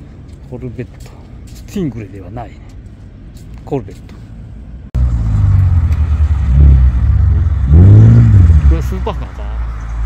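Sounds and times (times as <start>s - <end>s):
sports car engine revving: 5.0s - 9.8s.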